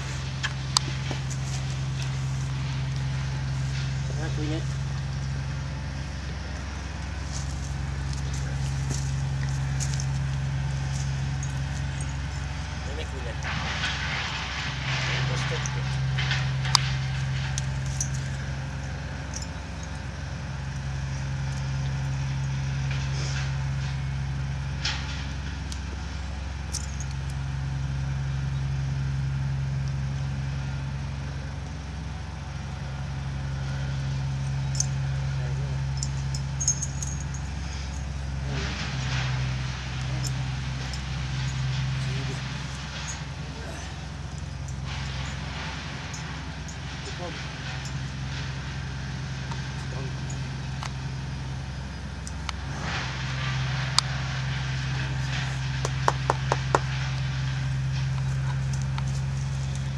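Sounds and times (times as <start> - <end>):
vehicle engine idling: 0.0 - 59.9
light metallic clicks of halter: 34.0 - 48.6.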